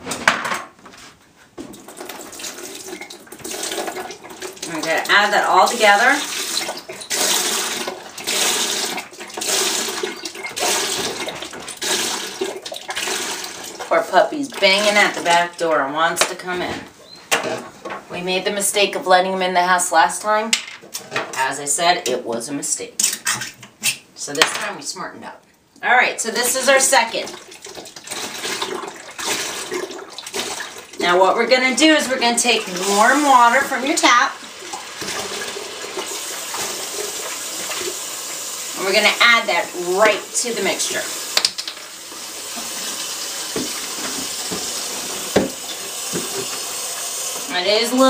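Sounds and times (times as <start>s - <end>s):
liquid splashing into plastic tub: 1.6s - 13.9s, 27.1s - 31.0s, 34.4s - 38.4s, 41.3s - 47.5s.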